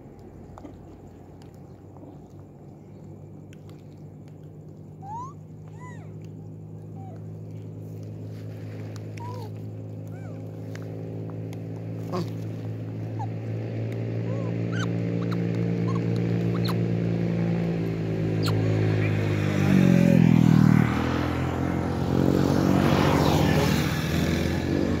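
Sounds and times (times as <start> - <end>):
vehicle engine running: 0.0 - 25.0.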